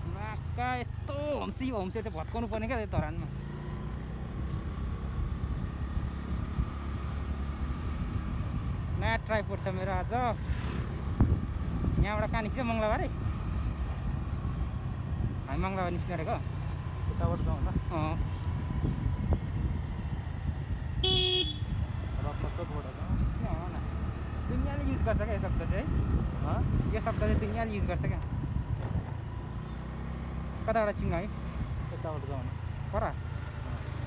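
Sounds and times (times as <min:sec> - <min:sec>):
motorcycle engine: 0:00.0 - 0:34.0
wind rumble: 0:04.6 - 0:29.6
short horn toot: 0:21.0 - 0:21.7.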